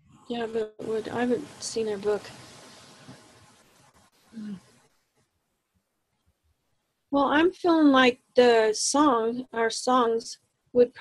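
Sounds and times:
person murmuring: 4.4 - 4.6.

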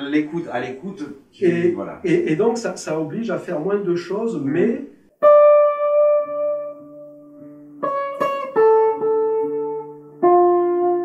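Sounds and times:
electric guitar single notes: 5.2 - 11.0.

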